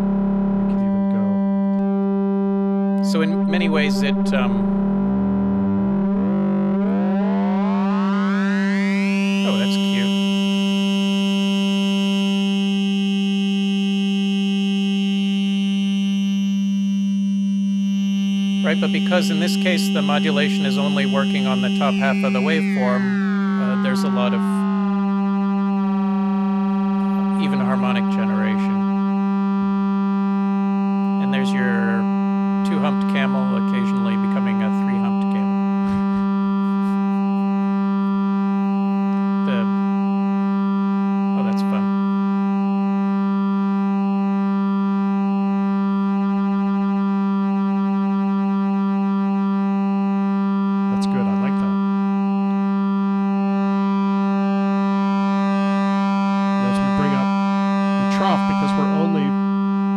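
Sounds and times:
synthesizer drone: 0.0s - 16.1s, 17.9s - 48.0s, 50.8s - 59.9s.

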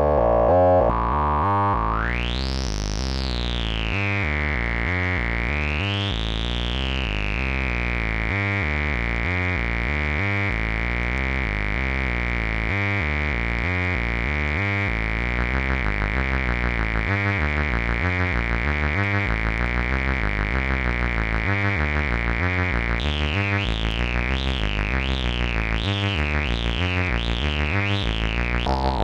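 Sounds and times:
fast filter wobble: 0.0s - 2.3s, 28.6s - 29.0s
synthesizer bass sequence: 0.0s - 3.6s, 22.8s - 29.0s.

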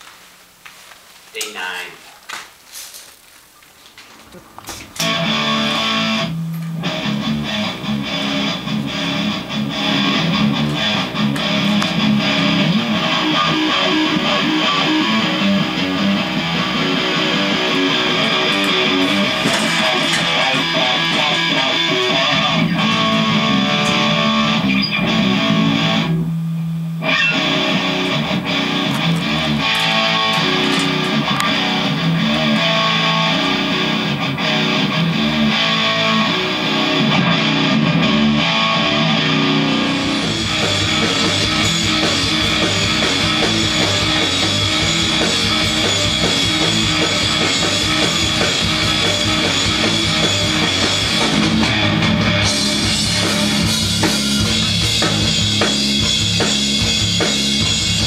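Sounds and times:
distorted electric guitar: 4.1s - 58.0s
drums and cymbals: 17.2s - 25.4s, 39.8s - 58.0s.

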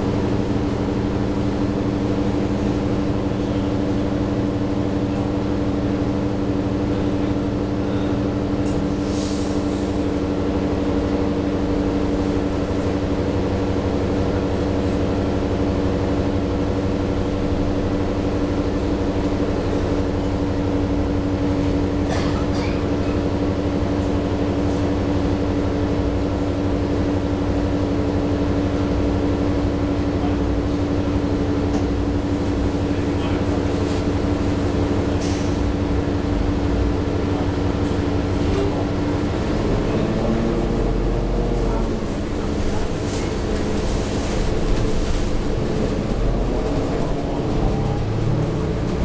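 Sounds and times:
bus diesel engine idling: 0.0s - 49.0s.

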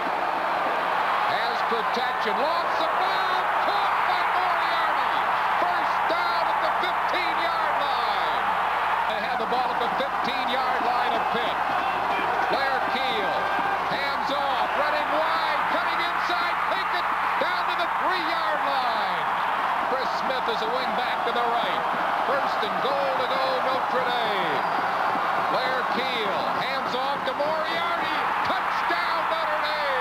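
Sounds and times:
crowd cheering and shouting: 0.0s - 30.0s.

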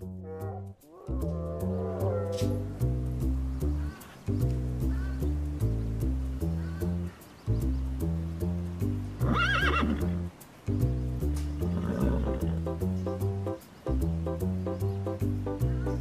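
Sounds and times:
bouncy background music: 0.0s - 16.0s
horse whinny: 9.2s - 10.2s, 11.7s - 12.6s.

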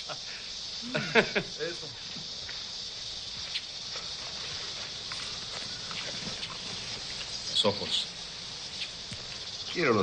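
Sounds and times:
faint ticks and rustles: 0.0s - 10.0s
high insect drone: 0.0s - 10.0s.

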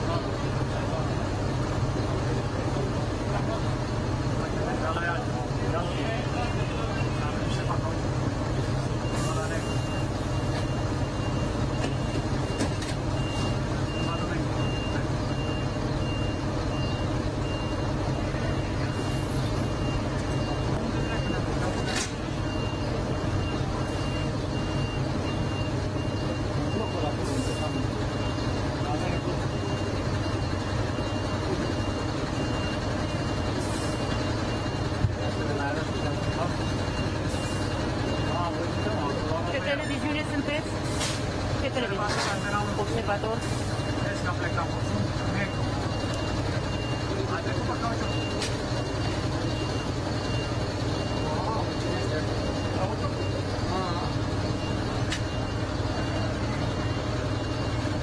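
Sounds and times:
diesel engine running: 0.0s - 58.0s
high warning beeper: 8.9s - 40.7s, 41.7s - 58.0s.

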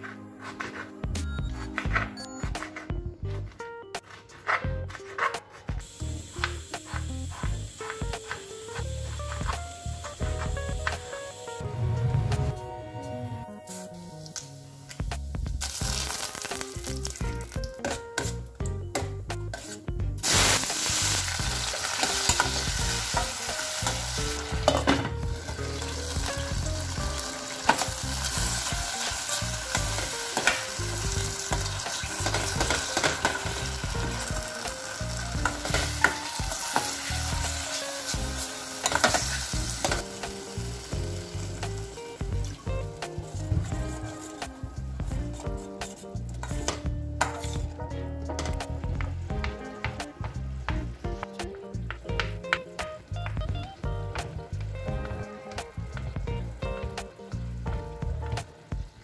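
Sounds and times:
tomatoes sizzling in oil: 5.8s - 12.5s, 13.7s - 18.4s, 19.4s - 47.7s.

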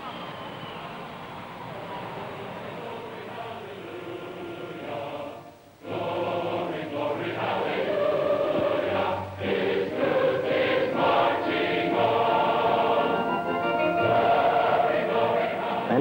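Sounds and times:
choir singing: 0.2s - 16.0s.

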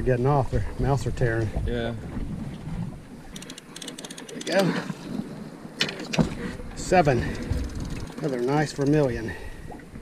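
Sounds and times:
wind buffeting microphone: 0.0s - 3.4s, 4.7s - 10.0s
open sea water noise: 0.0s - 10.0s
faint high clicks: 3.3s - 4.7s.

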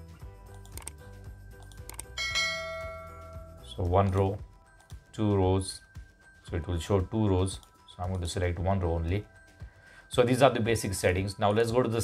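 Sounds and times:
soft background music: 0.0s - 12.0s
bell-like notification chime: 2.2s - 3.8s.

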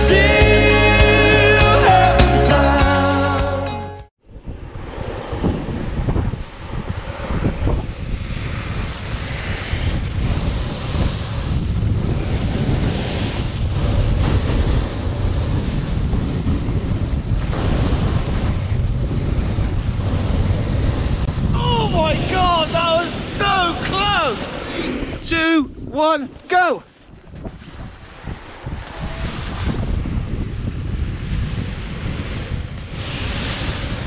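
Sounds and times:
wind buffeting microphone: 4.2s - 34.0s.

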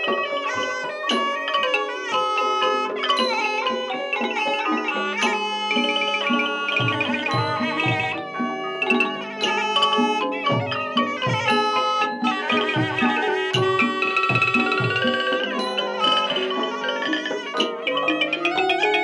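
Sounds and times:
reedy oboe melody: 0.0s - 19.0s
xylophones: 0.0s - 19.0s.

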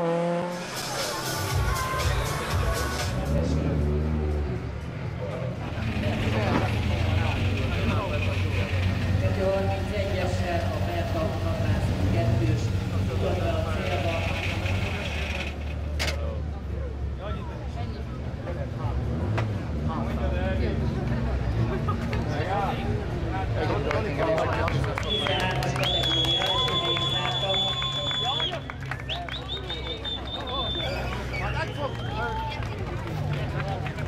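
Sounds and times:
voices talking: 19.9s - 34.0s.

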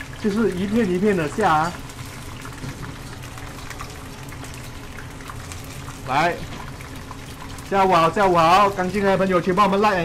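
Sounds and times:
deep-frying sizzle with crackles: 0.0s - 10.0s.

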